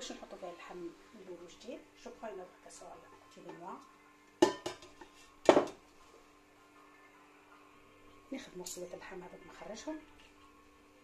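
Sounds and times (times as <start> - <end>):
metal pot clanking: 4.4 - 5.8.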